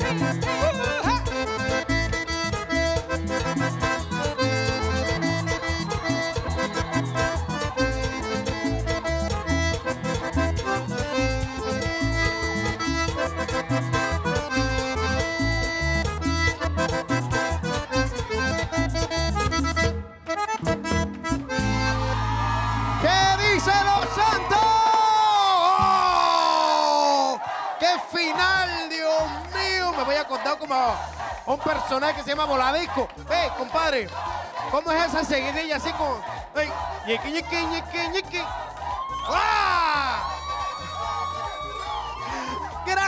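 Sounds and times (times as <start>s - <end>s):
lively button accordion tune: 0.0s - 22.4s
percussion and bass beat: 0.0s - 26.1s, 28.1s - 43.0s.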